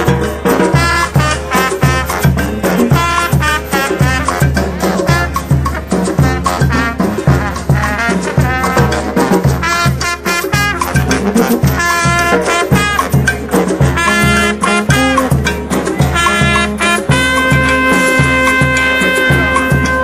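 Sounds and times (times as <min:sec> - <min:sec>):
sousaphone bass notes: 0:00.0 - 0:20.0
street brass band playing: 0:00.0 - 0:20.0.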